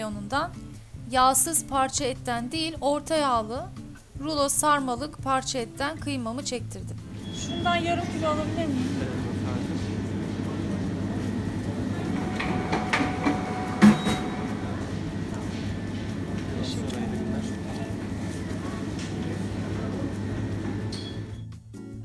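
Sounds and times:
low machine hum: 0:07.0 - 0:21.4.

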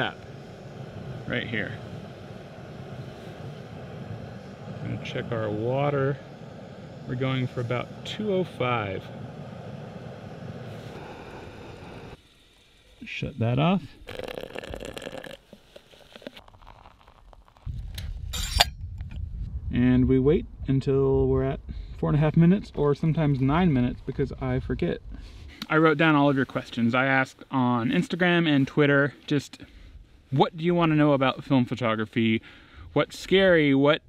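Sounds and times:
low handling rumble: 0:00.0 - 0:12.2
hot water pouring from kettle: 0:13.8 - 0:18.0
metallic lid clink and rattle: 0:18.3 - 0:18.8.

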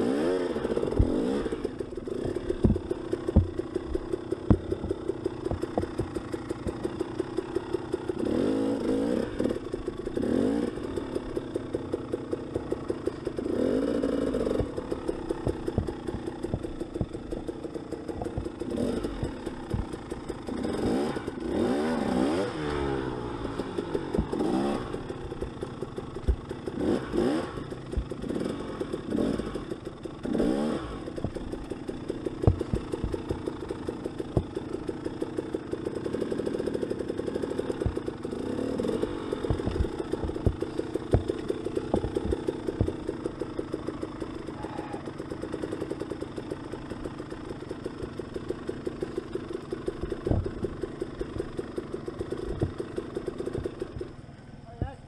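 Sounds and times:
dirt bike engine revving: 0:00.0 - 0:55.0
bike knocking over rocks: 0:00.7 - 0:07.6, 0:14.1 - 0:20.6, 0:23.4 - 0:28.5, 0:31.0 - 0:36.2, 0:36.8 - 0:44.4, 0:48.0 - 0:54.2.

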